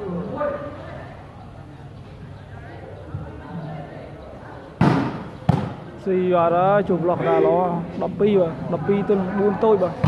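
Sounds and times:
murmur of spectators: 0:00.0 - 0:10.0
volleyball being struck: 0:04.8 - 0:05.8.

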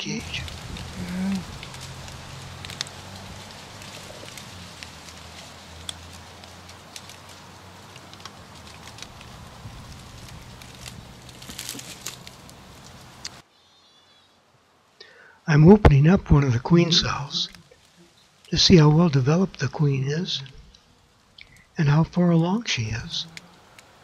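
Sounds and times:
honeybees humming: 0:00.0 - 0:14.2, 0:15.0 - 0:24.0.

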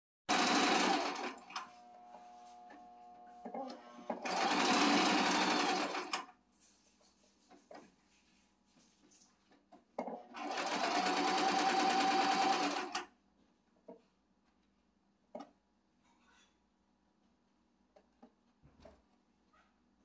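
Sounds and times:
electric sewing machine stitching: 0:00.3 - 0:02.8, 0:03.6 - 0:06.3, 0:10.3 - 0:13.1.

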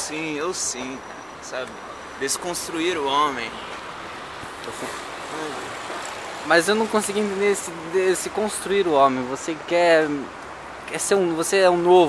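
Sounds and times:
road traffic hiss: 0:00.0 - 0:12.0.

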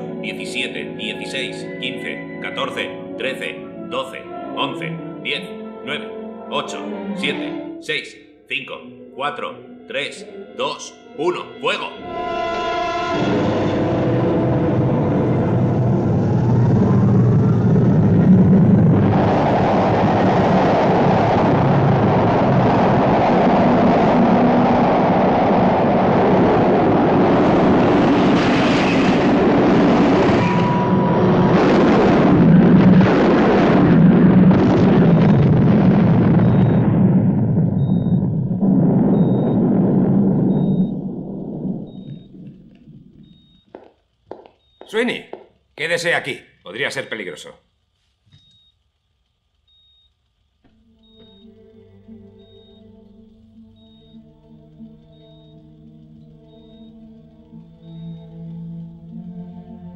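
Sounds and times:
rocket motor roar: 0:12.0 - 0:43.4.

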